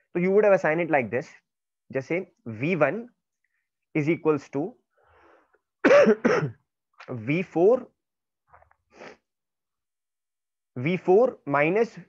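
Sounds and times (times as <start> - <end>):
faint breath: 4.9 - 5.7
man clearing throat: 5.8 - 6.6.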